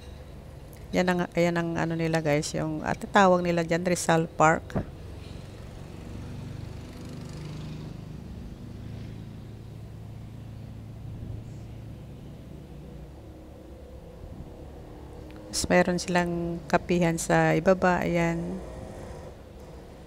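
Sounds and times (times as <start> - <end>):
car and motorcycle engines humming: 0.0 - 20.0.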